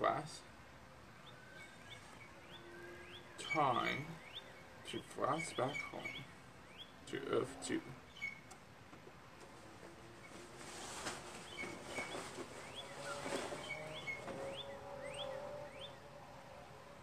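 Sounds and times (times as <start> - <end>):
small birds chirping: 0.0 - 17.0
whistled bird notes: 1.2 - 6.9.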